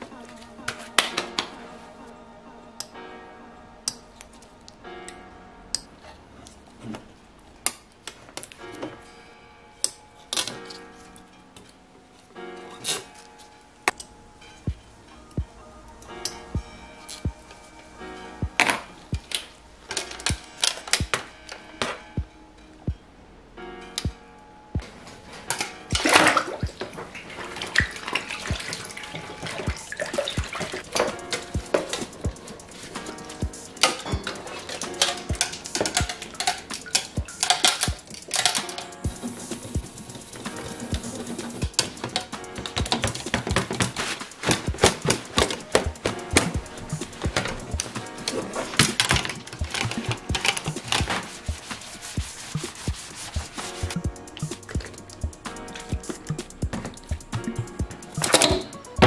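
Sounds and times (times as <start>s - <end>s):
thumping background music: 14.6s - 19.4s, 25.9s - 26.9s, 27.8s - 59.0s
water splashing in plastic tub: 26.0s - 32.1s
cloth rubbing on plastic mat: 43.0s - 54.0s.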